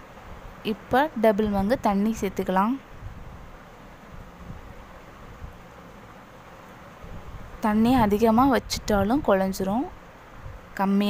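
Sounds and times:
low rumble on microphone: 1.4 - 5.6.

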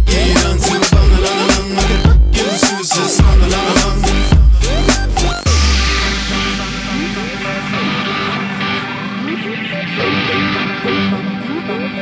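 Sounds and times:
heavy bass beats: 0.0 - 11.3
sliding synth notes: 3.5 - 12.0.

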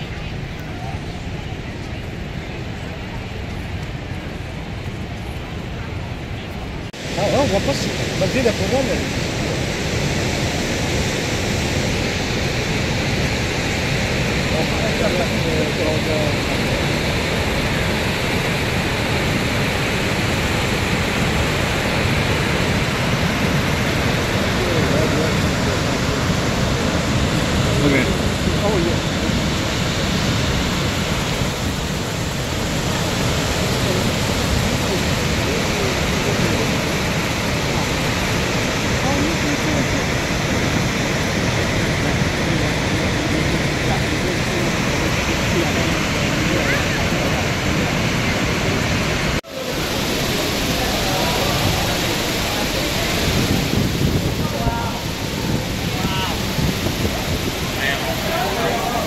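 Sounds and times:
faint voices: 0.0 - 20.3, 21.6 - 59.0
waterfall rushing: 0.0 - 59.0.

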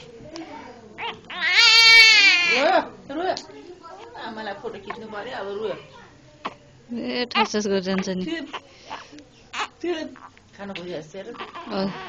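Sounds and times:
baby crying: 1.0 - 2.7, 11.3 - 12.0.

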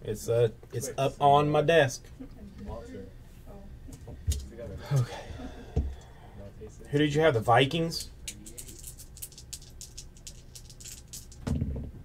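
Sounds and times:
dice clicking in hand: 8.3 - 11.4.

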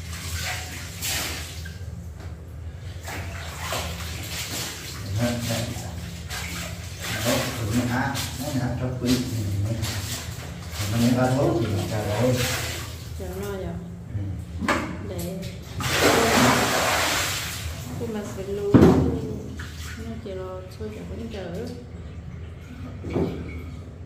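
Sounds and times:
water sloshing in a tub: 0.0 - 24.0
person talking: 13.2 - 16.6, 18.0 - 21.8.

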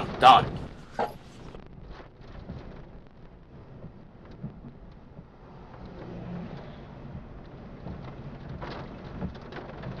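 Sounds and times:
steady rain: 0.0 - 10.0
wind: 0.0 - 10.0.

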